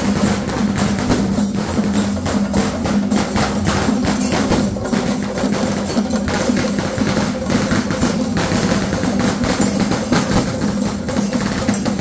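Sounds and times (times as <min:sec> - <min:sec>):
drums and hand percussion: 0:00.0 - 0:12.0.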